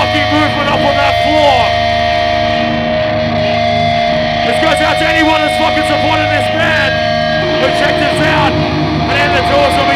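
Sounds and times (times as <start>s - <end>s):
electric guitar held tone: 0.0s - 9.9s.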